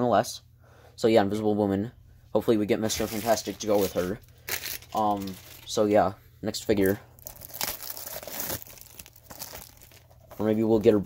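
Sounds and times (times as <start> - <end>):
plastic shrink wrap crinkling: 2.9 - 6.1, 6.7 - 11.0.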